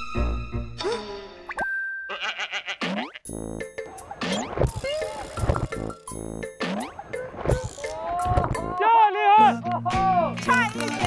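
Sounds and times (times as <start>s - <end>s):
comic background music with beat: 2.8s - 8.8s.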